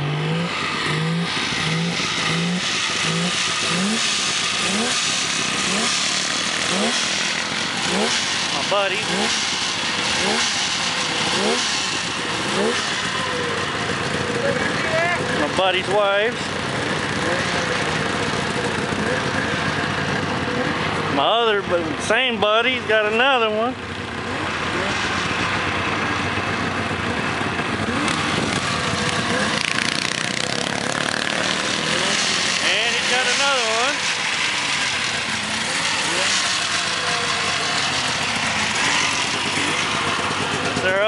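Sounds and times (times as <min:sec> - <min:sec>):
snowmobile engine idling: 0:00.7 - 0:24.4, 0:25.8 - 0:41.0.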